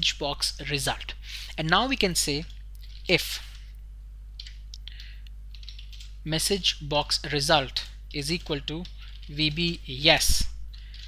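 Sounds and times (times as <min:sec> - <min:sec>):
steady low hum: 0:00.0 - 0:11.0
keyboard key clicks: 0:04.4 - 0:06.1.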